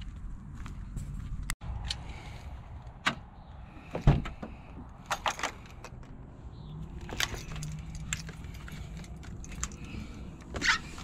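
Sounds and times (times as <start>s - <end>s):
keys jangling: 7.0s - 10.4s.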